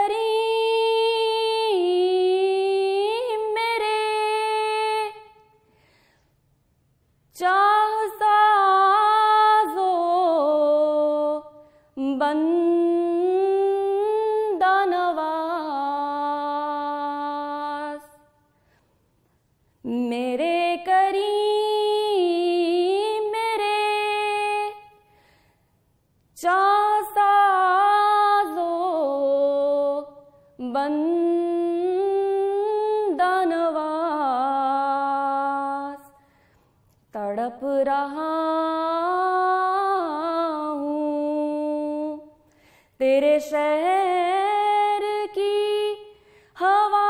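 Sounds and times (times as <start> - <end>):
woman singing unaccompanied: 0.0 - 5.4, 7.3 - 18.4, 19.8 - 25.0, 26.4 - 36.2, 37.1 - 42.4, 43.0 - 47.0.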